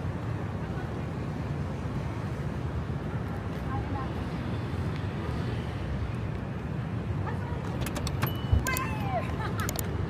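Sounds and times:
traffic rumble: 0.0 - 10.0
light clicks: 9.6 - 10.0.

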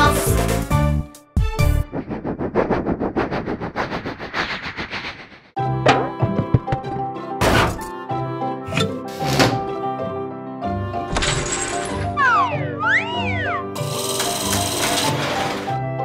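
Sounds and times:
loud whooshing sweeps: 1.8 - 5.6
bright cartoon tune: 12.0 - 14.8.

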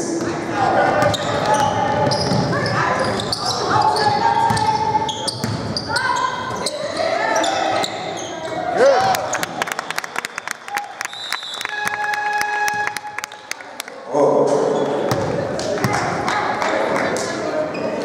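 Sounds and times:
voices echoing in hall: 0.0 - 11.0, 11.7 - 18.0
sneakers squeaking: 0.8 - 9.6, 14.7 - 15.4, 17.6 - 18.0
basketball bouncing: 5.4 - 5.7, 15.1 - 16.0.

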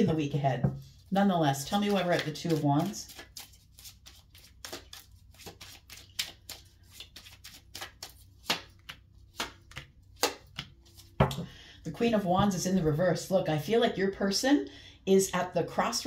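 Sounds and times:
cards being shuffled: 1.6 - 11.2.

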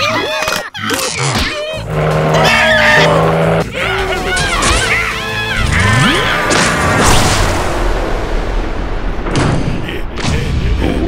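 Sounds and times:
cartoon music: 0.0 - 6.5
high wavering squeals and screams: 0.0 - 6.5
car sound effects: 1.8 - 8.2.

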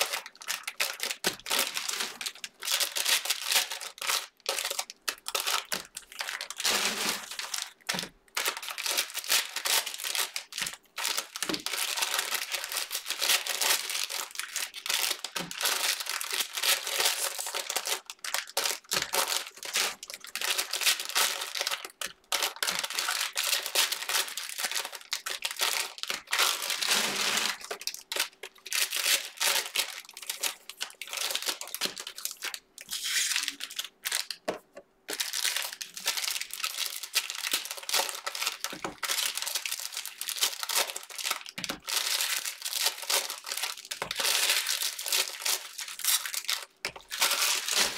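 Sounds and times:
cellophane wrappers tearing and crinkling: 0.0 - 34.4, 35.1 - 47.9.

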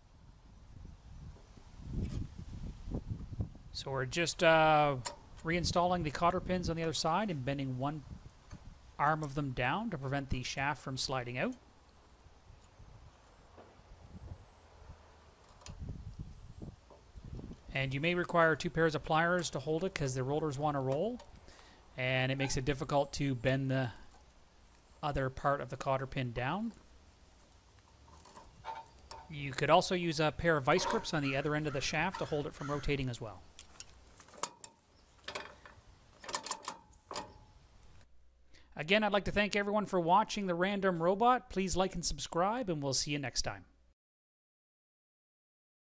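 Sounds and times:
metal tools clicking and clinking: 28.1 - 29.4, 30.6 - 31.4, 32.0 - 32.4, 33.6 - 37.5.

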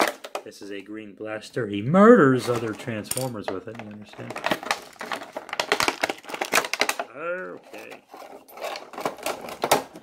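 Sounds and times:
plastic tray crinkling and clicking: 2.4 - 10.0.

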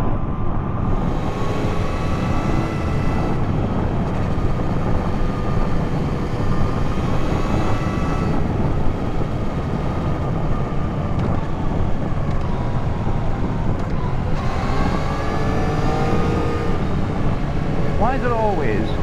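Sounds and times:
wind and road rush: 0.0 - 19.0
motorcycle engine running: 0.9 - 19.0.

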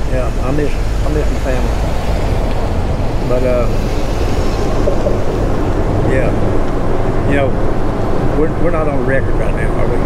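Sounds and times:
low outdoor background rumble: 0.0 - 10.0.

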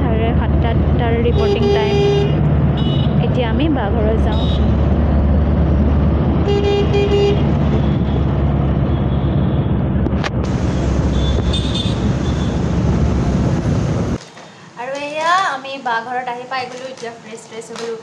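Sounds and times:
vehicle road and engine rumble: 0.0 - 14.2
car horn toots: 1.3 - 3.2, 6.4 - 8.1, 11.1 - 12.6.

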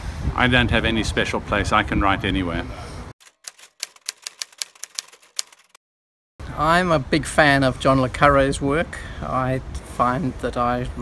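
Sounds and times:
typewriter keys clacking: 3.2 - 5.8.

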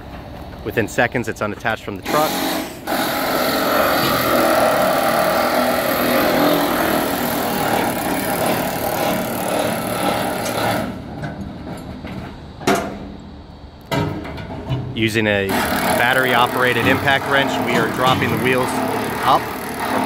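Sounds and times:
vehicle engine running: 15.6 - 20.0.

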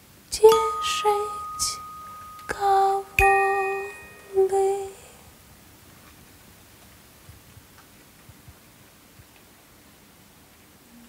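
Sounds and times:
glockenspiel strike: 0.5 - 5.0.

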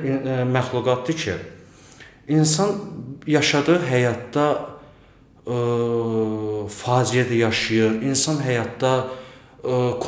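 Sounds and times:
man speaking: 0.0 - 1.6, 2.2 - 4.8, 5.4 - 10.0.

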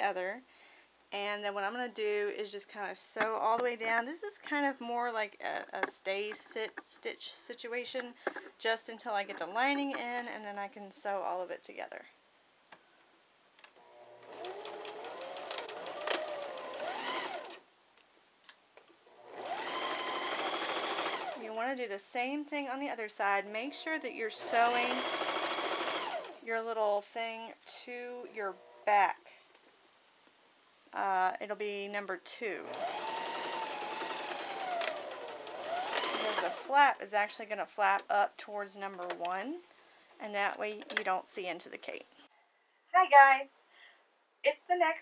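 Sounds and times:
needle ticking: 2.6 - 11.2, 19.4 - 21.8, 23.5 - 26.4, 32.7 - 37.3
sewing machine stitching: 14.2 - 17.6, 19.3 - 21.5, 24.3 - 26.4, 32.6 - 36.8.

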